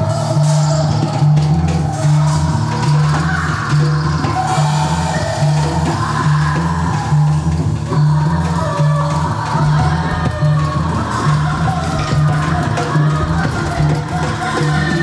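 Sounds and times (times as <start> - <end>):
drum kit with cymbals: 0.0 - 15.0.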